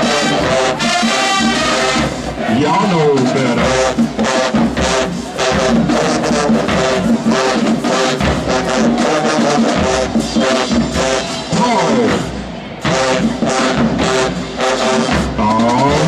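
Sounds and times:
horns pitch bend: 0:00.0 - 0:16.0
marching band playing: 0:00.0 - 0:16.0.

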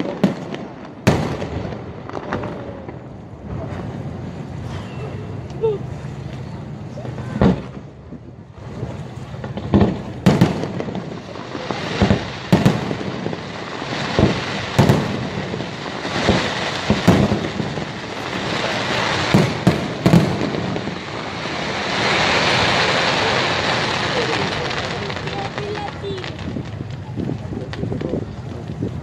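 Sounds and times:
firework shells booming: 0:00.0 - 0:04.7, 0:07.3 - 0:29.0
continuous rumble: 0:00.0 - 0:29.0.

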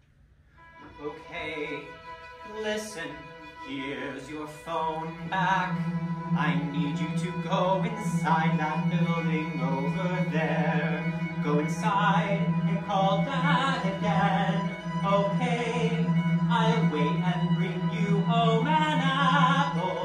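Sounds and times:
string ensemble: 0:00.6 - 0:20.0
singer with wide vibrato: 0:00.8 - 0:20.0.

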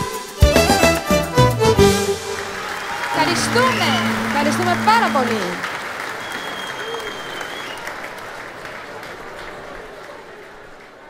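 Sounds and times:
audience applauding: 0:01.4 - 0:11.0
shrill sustained whistle: 0:03.2 - 0:04.5, 0:06.0 - 0:07.9.

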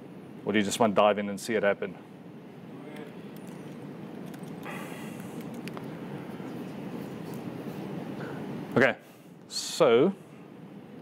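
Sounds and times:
room noise: 0:00.0 - 0:11.0.

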